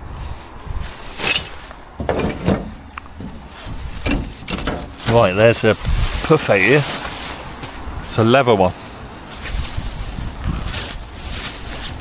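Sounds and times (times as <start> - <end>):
plastic bags rustling: 0.9 - 12.0.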